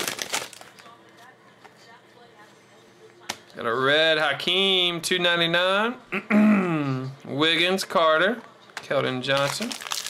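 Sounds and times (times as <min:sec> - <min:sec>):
foil wrapper crinkling: 0:00.0 - 0:01.0, 0:09.3 - 0:10.0.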